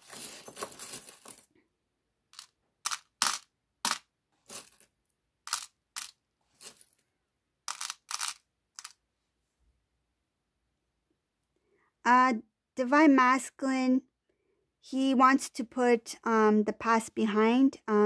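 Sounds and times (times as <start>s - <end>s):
metal charms rattling: 0.0s - 1.5s, 2.4s - 4.9s, 5.5s - 7.0s, 7.7s - 9.0s.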